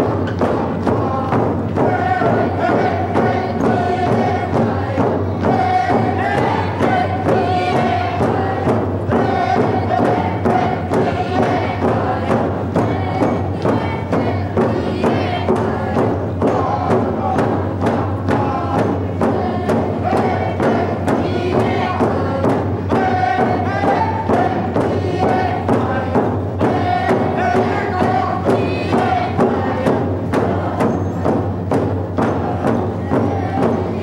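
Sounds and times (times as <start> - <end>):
group singing: 0.0 - 34.0
steady drumbeat: 0.0 - 34.0.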